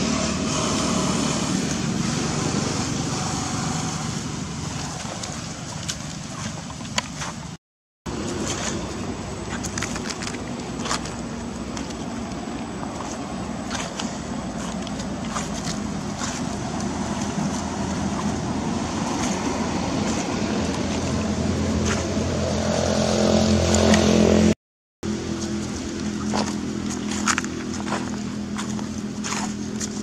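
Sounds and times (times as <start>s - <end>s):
motor engine hum: 0.0s - 30.0s.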